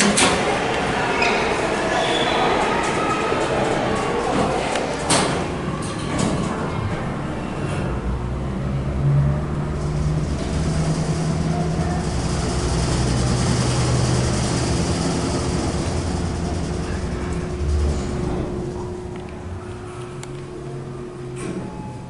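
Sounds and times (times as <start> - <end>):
elevator drive hum: 0.0 - 22.0.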